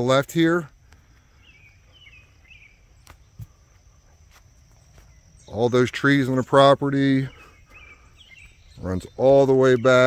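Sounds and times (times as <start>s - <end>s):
high insect trill: 0.0s - 10.0s.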